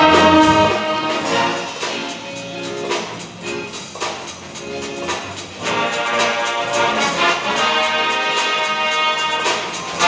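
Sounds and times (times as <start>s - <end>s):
live jazz band playing: 0.0s - 10.0s.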